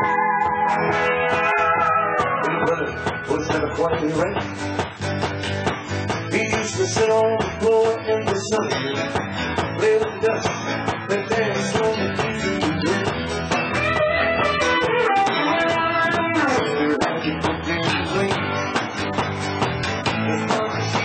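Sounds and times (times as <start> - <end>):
bass: 0.0 - 21.0
electric guitar: 0.0 - 21.0
live country band: 0.0 - 21.0
steady drum beat: 2.2 - 21.0.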